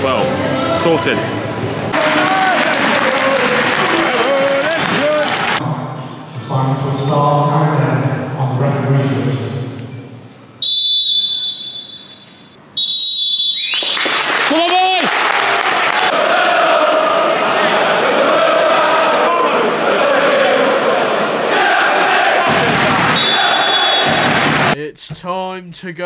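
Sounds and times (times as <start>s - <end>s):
stadium crowd cheering and shouting: 0.0s - 5.9s, 13.8s - 24.8s
referee's whistle: 10.6s - 14.1s, 23.1s - 24.3s.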